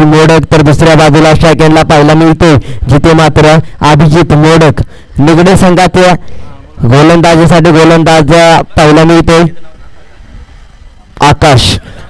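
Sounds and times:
man commentating: 0:00.0 - 0:09.8, 0:11.2 - 0:11.9.

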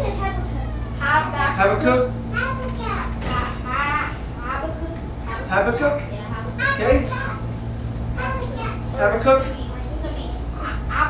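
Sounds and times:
children speaking and calling out: 0:00.0 - 0:11.0
steady low hum: 0:00.0 - 0:11.0.

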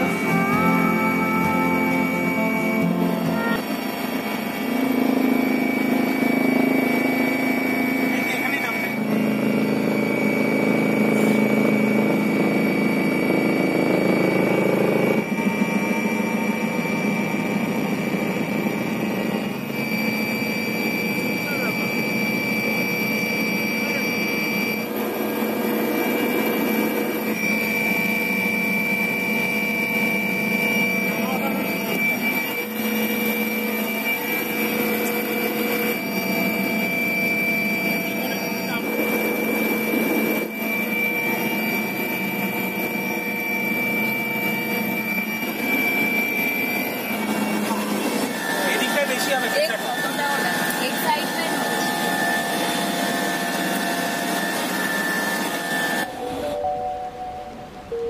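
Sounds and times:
engine and rotor drone: 0:00.0 - 0:56.8
constant high tones: 0:00.0 - 0:58.0
turbine whine: 0:00.0 - 0:58.0.

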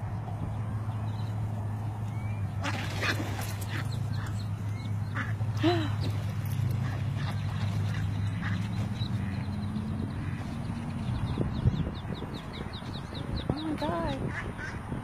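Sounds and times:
ducks scuffling at water's edge: 0:00.8 - 0:14.8.

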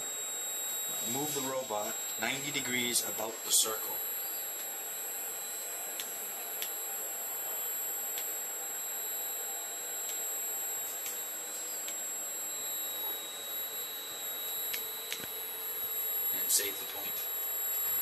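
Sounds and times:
high-pitched electronic whine: 0:00.0 - 0:18.0.

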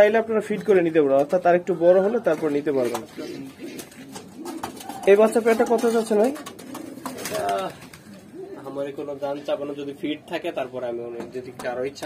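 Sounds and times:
pigeons cooing: 0:01.8 - 0:10.4.

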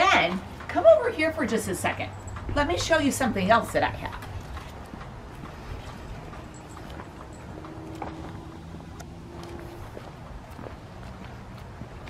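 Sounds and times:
footsteps on stone pavers: 0:00.0 - 0:12.0.

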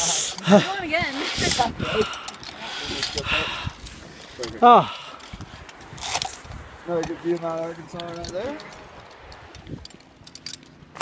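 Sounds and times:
people's voices: 0:00.0 - 0:05.8
rushes of hiss: 0:00.0 - 0:06.9.

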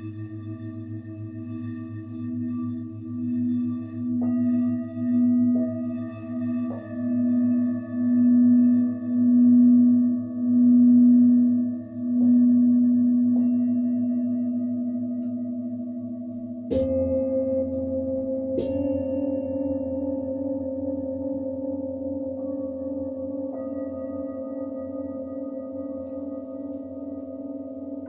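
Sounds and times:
singing bowl rubbed humming: 0:00.0 - 0:28.0
singing bowl strikes ringing: 0:01.5 - 0:28.0.

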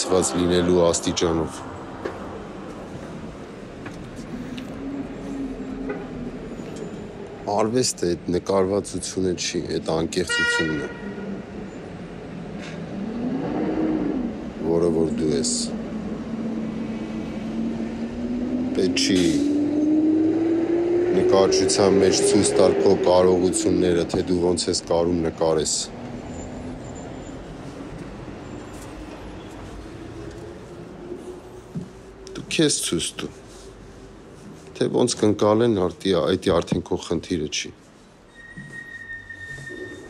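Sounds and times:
steady background noise: 0:00.0 - 0:40.0
traffic noise: 0:00.0 - 0:40.0
short horn toot: 0:10.2 - 0:11.4
low hum rising and falling: 0:19.5 - 0:23.4.

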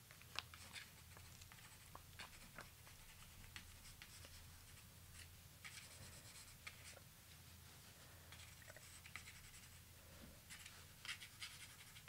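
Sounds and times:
faint low hum: 0:00.0 - 0:12.0
pencil scratching on paper: 0:05.6 - 0:07.0, 0:08.4 - 0:09.8, 0:10.5 - 0:12.0.

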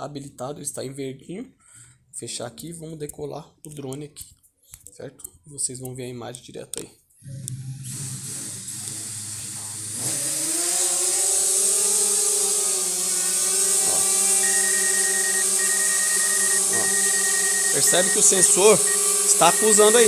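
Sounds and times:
drone motors whining: 0:07.3 - 0:20.0
high beep: 0:14.2 - 0:20.0.

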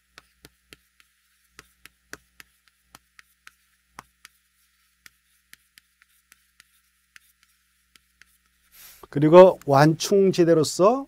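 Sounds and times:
chalk tapping on blackboard: 0:00.0 - 0:10.2.

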